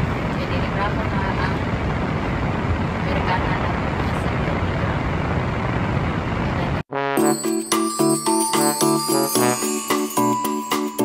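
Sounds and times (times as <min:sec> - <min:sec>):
vehicle interior rumble and hiss: 0:00.0 - 0:06.8.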